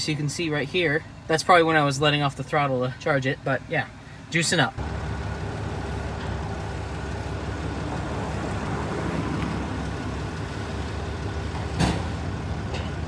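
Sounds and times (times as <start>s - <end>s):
truck engine idling: 0.0s - 13.0s.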